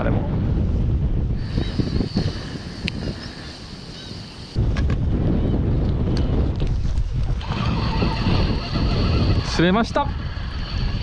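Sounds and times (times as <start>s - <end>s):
wind buffeting microphone: 0.0s - 11.0s.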